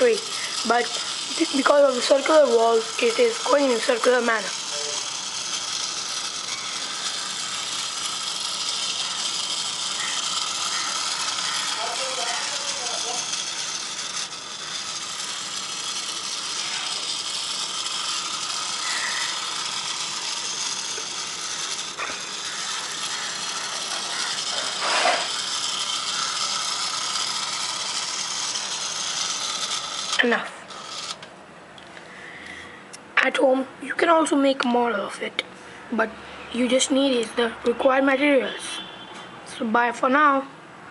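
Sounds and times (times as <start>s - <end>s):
small electric motor whirring: 0.0s - 31.3s.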